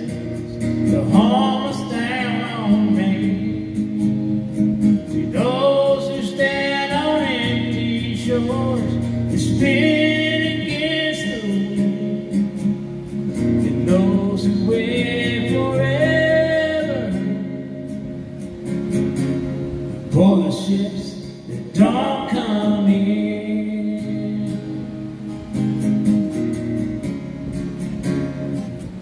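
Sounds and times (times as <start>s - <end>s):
man singing a slow ballad: 0.0s - 18.2s, 19.9s - 25.6s
strummed acoustic guitar: 0.0s - 29.0s.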